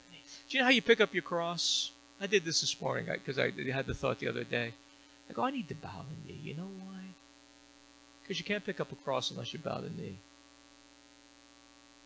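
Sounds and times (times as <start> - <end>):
buzzy electrical mains hum: 0.0 - 12.0
person speaking: 0.2 - 7.2, 8.3 - 10.2.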